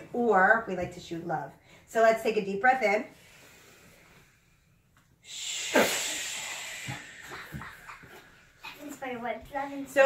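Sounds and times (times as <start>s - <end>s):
people breathing out hissing: 5.2s - 8.7s.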